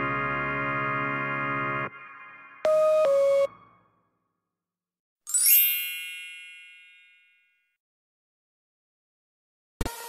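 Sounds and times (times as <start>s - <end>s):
shimmering chime sweeping upward: 5.3s - 7.2s.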